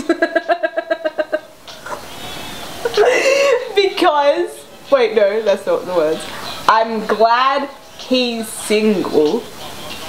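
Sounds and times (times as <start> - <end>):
women cackling laughter: 0.0 - 2.0, 2.8 - 3.8
breathy laughter: 2.9 - 3.8.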